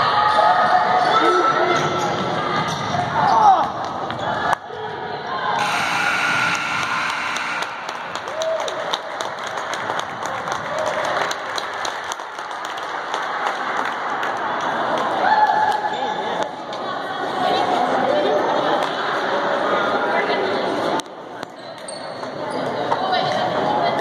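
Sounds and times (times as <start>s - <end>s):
spectators' voices: 0.0s - 24.0s.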